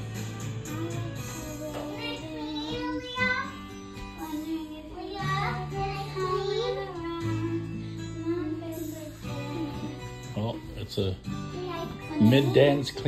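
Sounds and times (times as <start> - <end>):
karaoke backing track: 0.0 - 13.0
girl singing: 0.6 - 10.8, 11.5 - 13.0.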